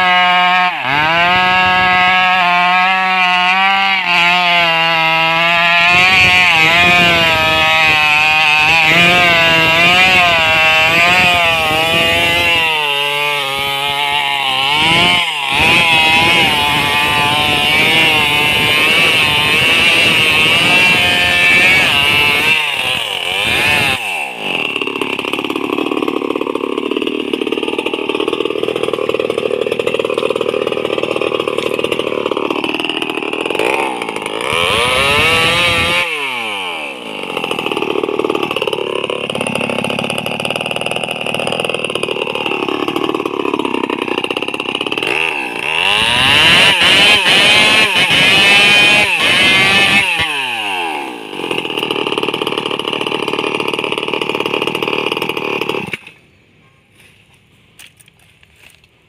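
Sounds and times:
chainsaw idling and revving: 0.0s - 56.2s.

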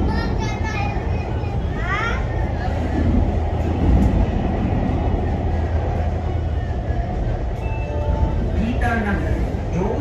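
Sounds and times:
train rumbling on track: 0.0s - 10.0s.

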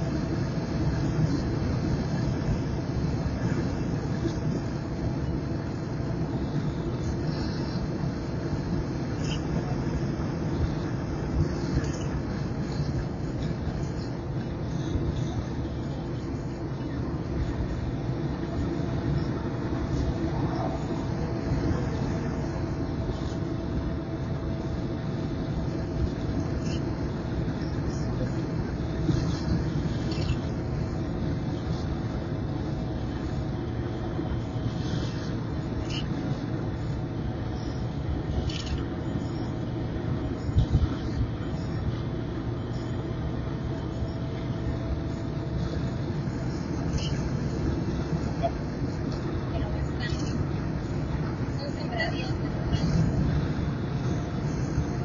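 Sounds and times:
car road and engine noise: 0.0s - 55.0s
wind noise: 39.7s - 41.4s.

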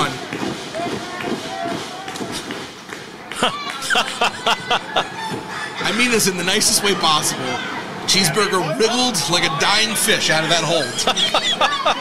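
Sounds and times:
commentary speech: 0.0s - 12.0s
faint audience murmur: 0.0s - 12.0s.

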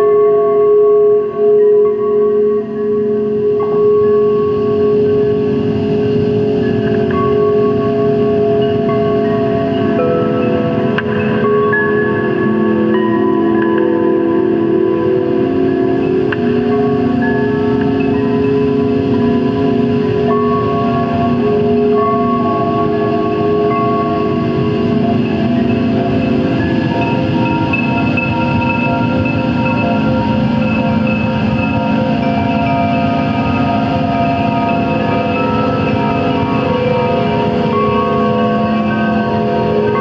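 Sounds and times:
electronic drone music: 0.0s - 40.0s.

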